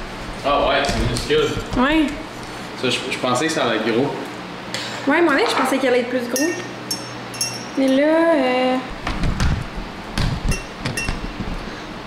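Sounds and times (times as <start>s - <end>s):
glass clinks: 6.4s - 8.0s, 10.5s - 11.2s.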